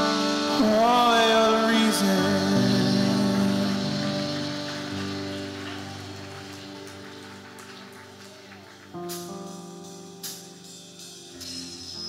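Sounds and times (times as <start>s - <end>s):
sustained keyboard chord: 0.0s - 8.2s.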